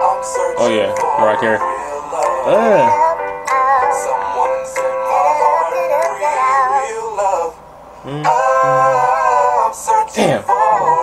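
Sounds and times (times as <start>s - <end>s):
singing with strong vibrato: 0.0s - 11.0s.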